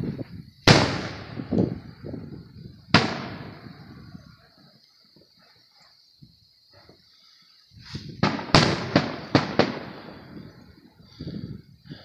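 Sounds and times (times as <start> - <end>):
fireworks bangs: 0.0 - 5.4, 7.8 - 12.0.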